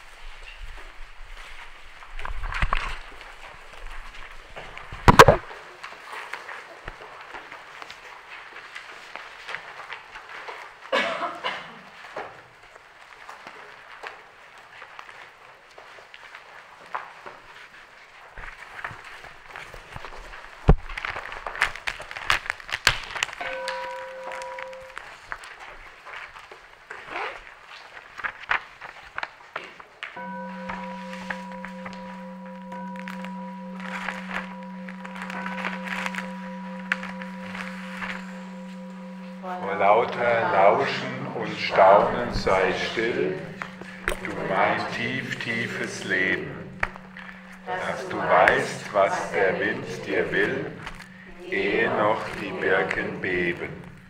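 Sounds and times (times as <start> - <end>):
held musical note: 23.4 - 25.1, 30.2 - 53.8
steady sustained tone: 23.4 - 25.2, 30.2 - 54.0
irregular crackling: 30.2 - 54.0.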